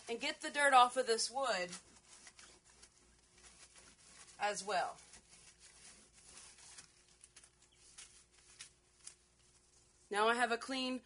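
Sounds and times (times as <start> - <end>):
hand wiping a surface: 1.8 - 10.1.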